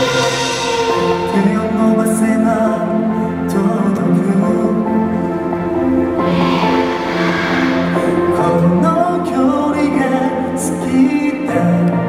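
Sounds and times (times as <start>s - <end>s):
male vocals singing pop song: 1.2s - 4.9s, 8.3s - 12.0s
backing track: 5.2s - 9.8s.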